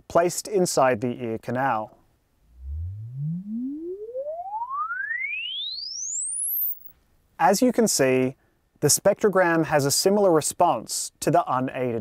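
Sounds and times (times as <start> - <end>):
rising sine sweep tone: 2.4 - 6.9.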